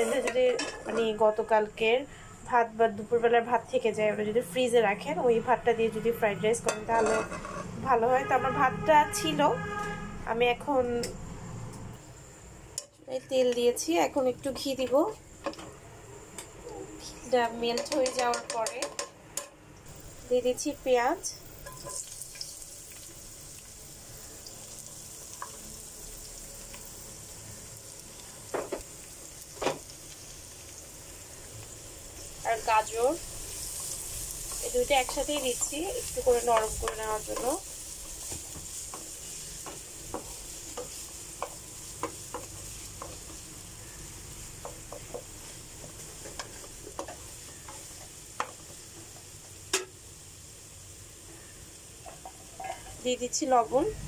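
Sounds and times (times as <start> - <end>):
onions sizzling in a pan: 0.0 - 4.0, 4.6 - 54.0
spatula clicking on pan: 17.7 - 19.6.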